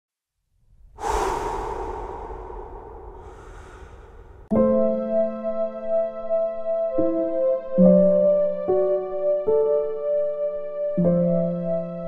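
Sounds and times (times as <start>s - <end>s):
faint low rumble: 0.8s - 4.5s
loud noisy rush: 1.0s - 4.4s.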